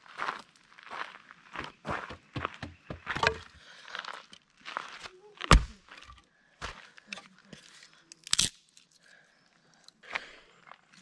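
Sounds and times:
wood crunching: 0:01.9 - 0:03.6.

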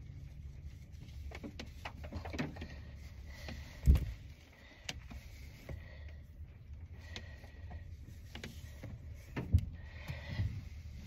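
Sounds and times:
low car cabin rumble: 0:00.0 - 0:11.0.

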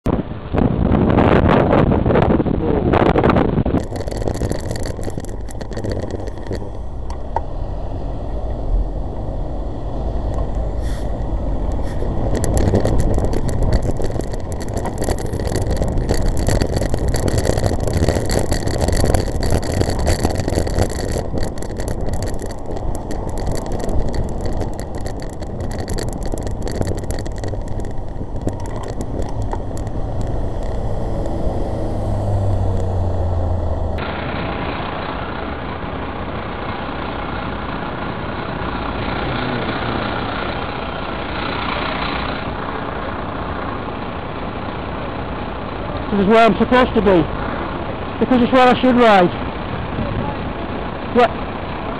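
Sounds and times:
road noise: 0:00.0 - 0:51.9
wind buffeting microphone: 0:00.1 - 0:34.0
bus engine hum: 0:00.1 - 0:51.9
car engines running: 0:00.1 - 0:51.9.

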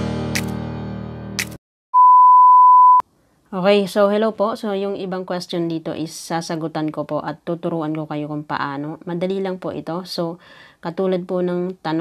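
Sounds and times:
loud electronic beep: 0:02.0 - 0:03.0.

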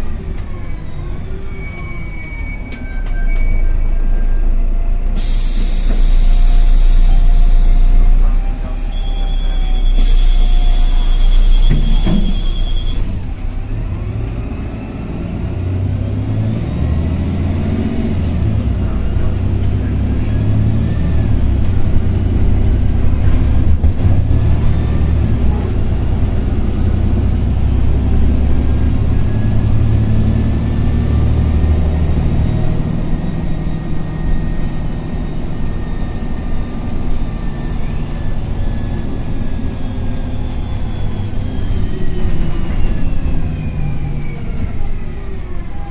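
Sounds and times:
bus diesel engine whining: 0:00.0 - 0:45.9.

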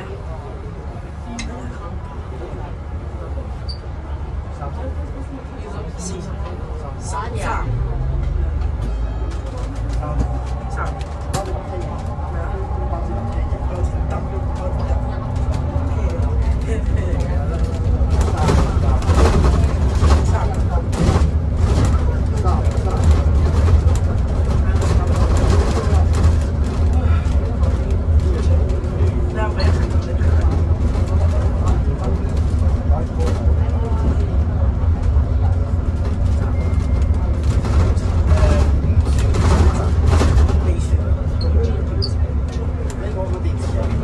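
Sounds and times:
bus road rumble: 0:00.0 - 0:44.0.

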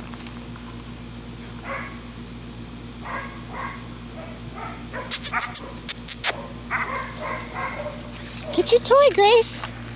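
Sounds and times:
puppy high-pitched whine: 0:05.0 - 0:07.9.

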